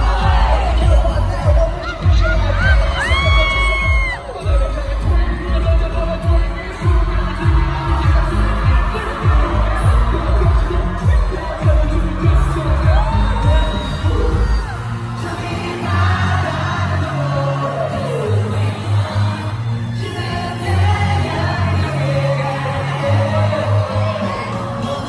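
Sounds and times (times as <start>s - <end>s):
deep pulsing bass line: 0.0s - 14.7s
pop song over sound system: 0.0s - 25.0s
sung vocals: 0.0s - 25.0s.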